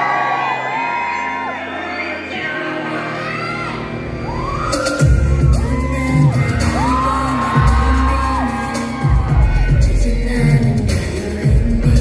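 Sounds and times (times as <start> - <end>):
audience screaming and whooping: 0.0 - 11.9
loud pop music over sound system: 0.0 - 12.0.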